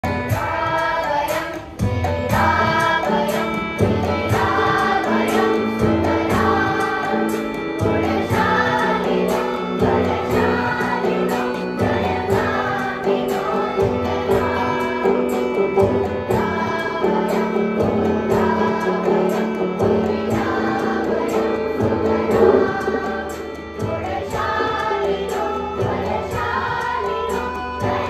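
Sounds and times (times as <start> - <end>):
children's choir singing: 0.0 - 28.0.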